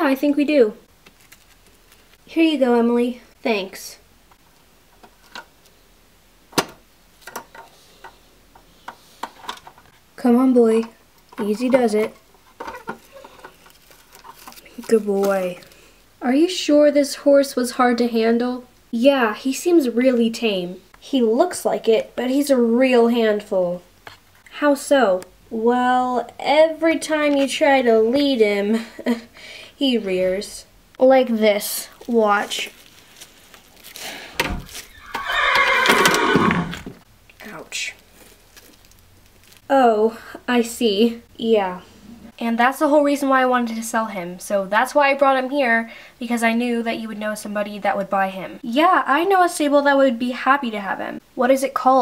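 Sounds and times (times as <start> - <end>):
horse neighing: 34.9 - 36.9.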